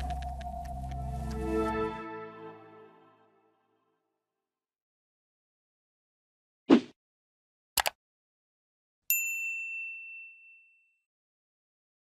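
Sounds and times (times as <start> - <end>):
bright bell ding: 9.1 - 11.0.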